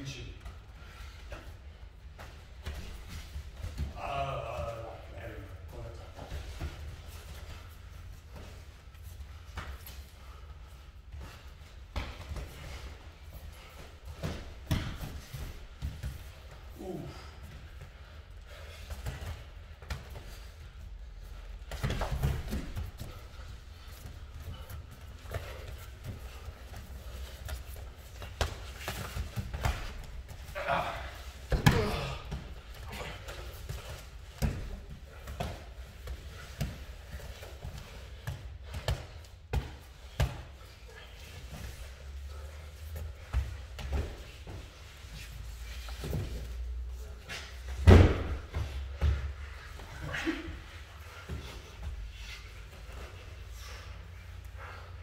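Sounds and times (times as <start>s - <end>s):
person grunting: 30.5s - 33.3s.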